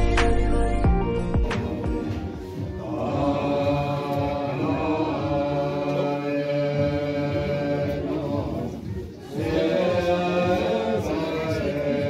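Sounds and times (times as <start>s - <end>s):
voices chanting prayers: 1.6s - 12.0s.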